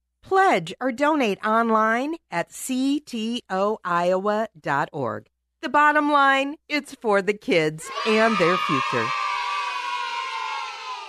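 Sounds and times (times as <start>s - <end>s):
children cheering: 7.9s - 11.0s.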